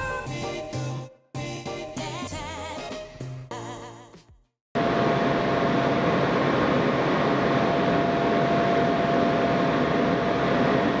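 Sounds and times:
constant high whine: 4.8s - 11.0s
subway car rail noise: 4.8s - 11.0s.

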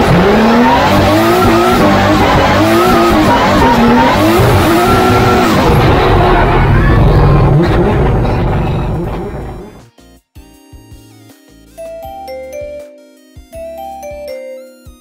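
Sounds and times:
car engine revving: 0.0s - 9.8s
tyre squeal and skidding: 0.5s - 7.9s.

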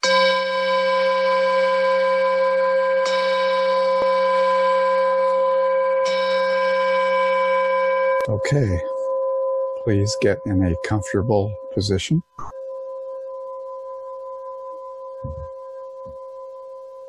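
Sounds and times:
meditation bell ringing: 0.0s - 17.0s.

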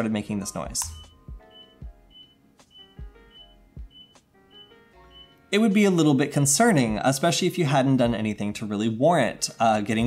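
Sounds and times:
faint background music: 0.0s - 10.0s
short high computer beeps: 0.8s - 5.4s.

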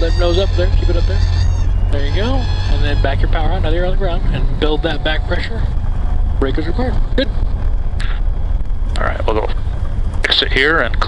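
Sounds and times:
low rumble of aircraft engine: 0.0s - 11.0s.

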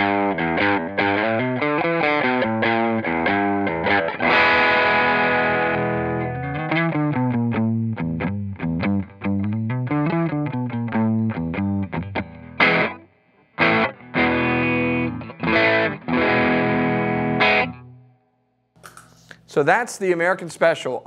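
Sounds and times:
ringing guitar chord stabs: 0.0s - 8.5s, 9.7s - 18.3s
overdriven electric guitar notes: 0.0s - 18.3s.

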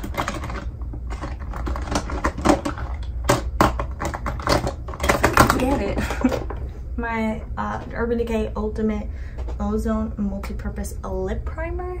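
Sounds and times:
plastic containers clattering: 0.0s - 6.7s
low steady hum: 0.0s - 12.0s.

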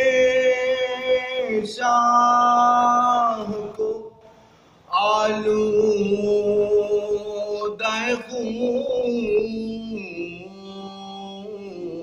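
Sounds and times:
man singing unaccompanied lament: 0.0s - 4.2s, 4.9s - 12.0s.

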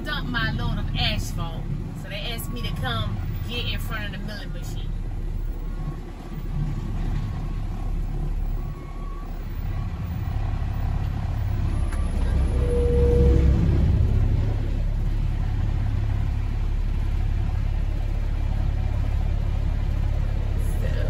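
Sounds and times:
truck diesel engine rumbling: 0.0s - 21.0s
short squeal: 11.6s - 13.7s.

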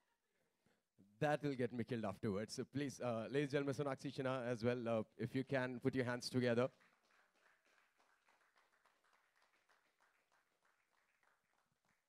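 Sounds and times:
faint audience clapping: 6.4s - 12.0s.

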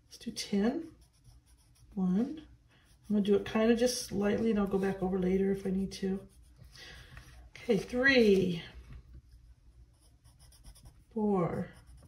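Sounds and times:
pencil scratching on paper: 0.4s - 8.5s, 9.9s - 12.0s.

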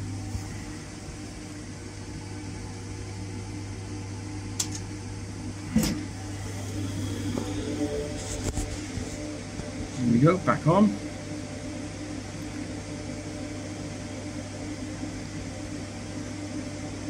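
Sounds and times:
cooling fans whirring: 0.0s - 17.0s
steady electrical hum: 0.0s - 17.0s.

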